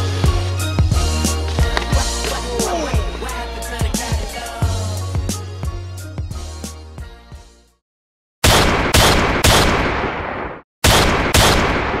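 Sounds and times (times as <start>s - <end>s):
loud sharp bangs ringing out: 8.4s - 12.0s.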